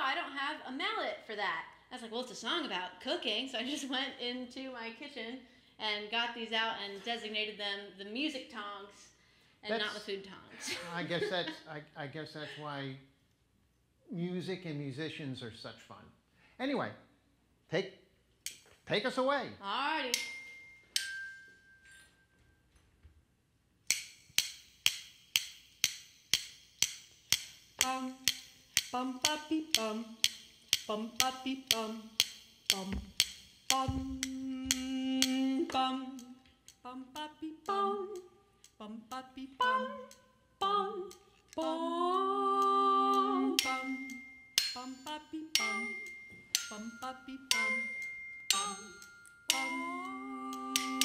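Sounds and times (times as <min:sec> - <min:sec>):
glockenspiel notes struck with tongs: 0:20.1 - 0:22.4, 0:23.9 - 0:29.0, 0:43.6 - 0:51.0
woman singing wordlessly: 0:27.8 - 0:51.0.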